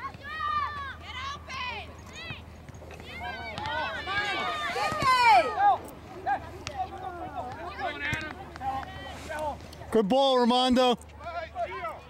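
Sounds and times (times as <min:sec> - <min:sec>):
people shouting: 0:03.0 - 0:08.1.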